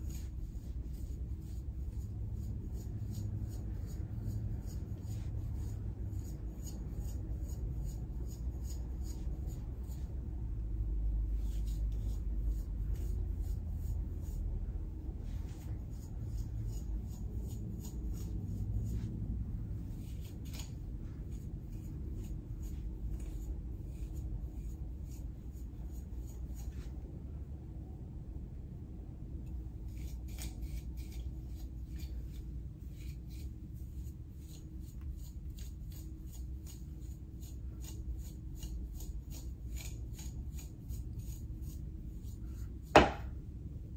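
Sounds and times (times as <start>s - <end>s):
comb raking through wig hair: 0.0s - 10.4s, 11.1s - 27.0s, 29.8s - 43.0s
low room hum: 0.0s - 43.9s.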